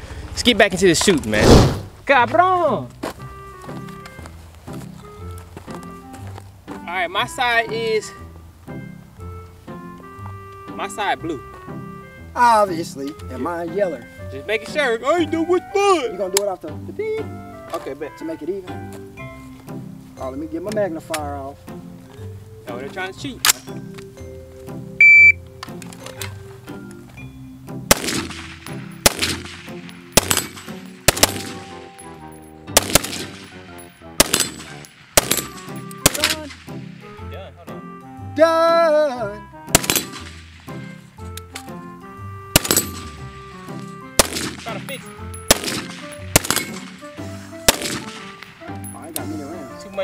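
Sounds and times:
short high beep: 25.0s - 25.4s
rifles firing single shots: 27.9s - 32.1s, 32.7s - 37.2s, 39.7s - 40.9s, 42.5s - 49.6s.

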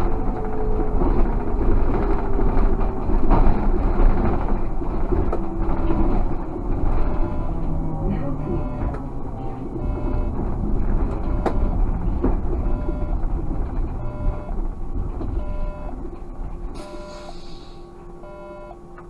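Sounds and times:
trolleybus running: 0.0s - 19.0s
short electronic beep: 16.8s - 17.4s.

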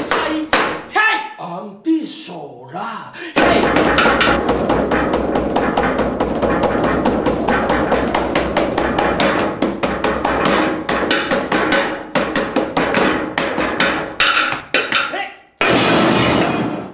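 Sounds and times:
wooden stick striking hard surface: 0.0s - 0.9s, 3.4s - 16.7s.

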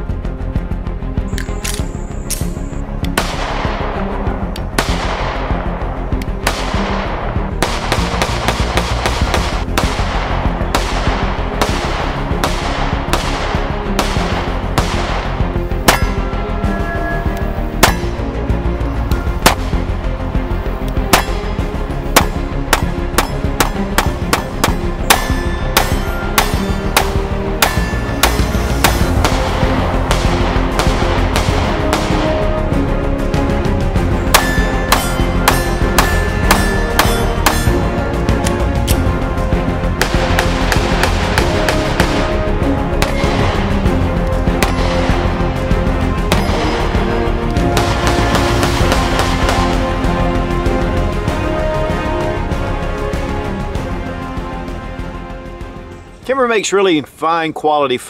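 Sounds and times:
background music: 0.0s - 58.0s
pistol shots: 3.1s - 4.0s, 4.8s - 5.7s, 6.4s - 16.2s, 19.4s - 19.8s, 21.0s - 32.4s, 34.3s - 37.8s, 44.6s - 45.2s.

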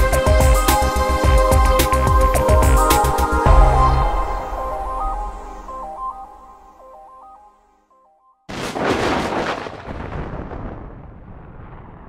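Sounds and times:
thunder rumbling: 8.5s - 12.0s.

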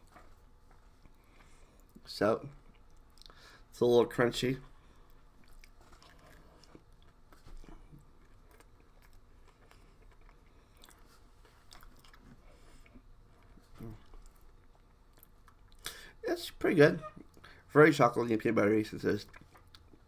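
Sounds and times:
chewing with small crunches: 0.0s - 3.7s, 4.6s - 16.0s, 18.9s - 20.0s.

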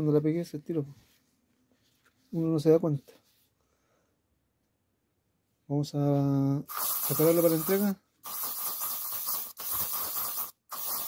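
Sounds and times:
aerosol spray can hissing: 6.7s - 11.0s.

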